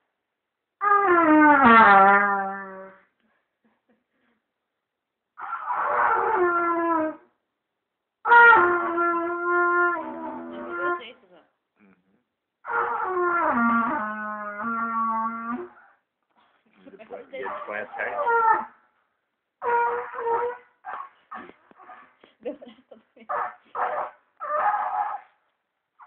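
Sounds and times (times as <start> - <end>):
child blowing trumpet: 0.8 - 3.0, 5.4 - 7.3, 8.2 - 11.1, 12.6 - 16.0, 17.4 - 18.8, 19.6 - 22.1, 23.3 - 25.4.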